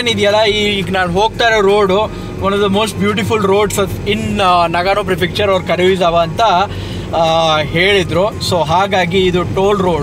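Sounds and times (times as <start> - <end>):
car driving hum: 0.0 - 10.0.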